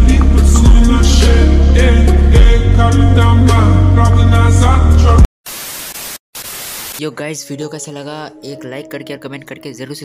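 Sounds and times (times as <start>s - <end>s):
music: 0.0s - 5.3s, 7.0s - 10.0s
static hiss: 5.5s - 7.0s.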